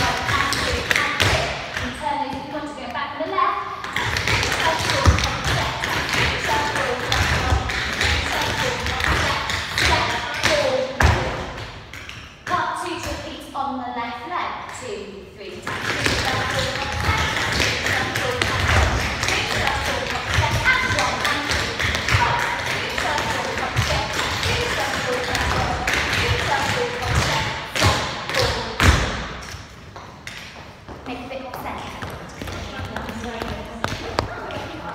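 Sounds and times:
dance shoes tapping on floor: 0.0s - 3.0s, 3.8s - 13.3s, 15.6s - 34.9s
indistinct voices: 3.8s - 11.5s, 15.4s - 29.2s.

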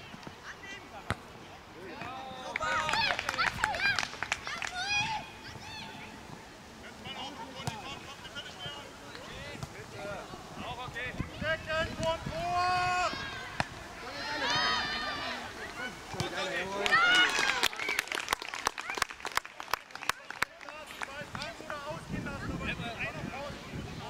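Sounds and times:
children shouting and calling: 2.7s - 6.3s, 12.4s - 16.0s.

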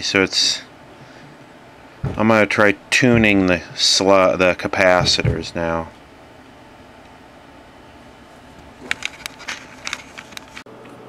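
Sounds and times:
low bench hum: 0.0s - 10.6s.

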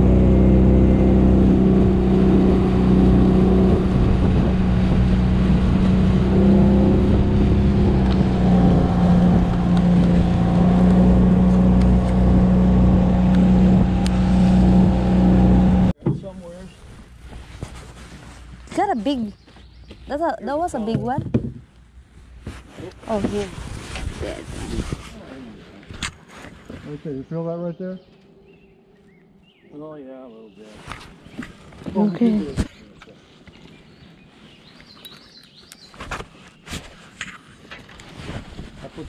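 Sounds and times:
outboard motor running: 0.0s - 16.4s
wake rushing: 0.0s - 16.9s
wind: 0.0s - 39.0s.

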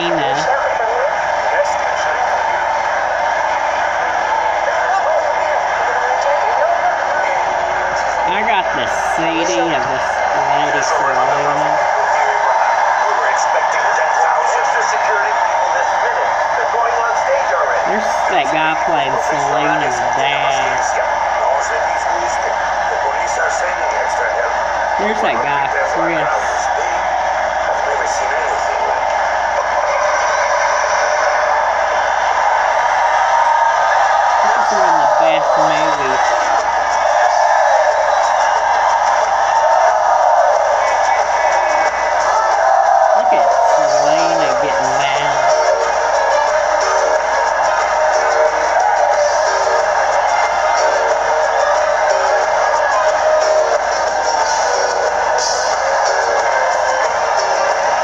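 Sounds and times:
film music from television: 0.0s - 58.0s
voices from television: 0.0s - 58.0s.

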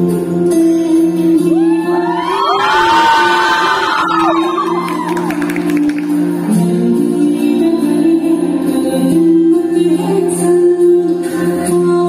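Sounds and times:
music in a large hall: 0.0s - 12.0s
audience cheering and whooping: 1.6s - 6.1s.

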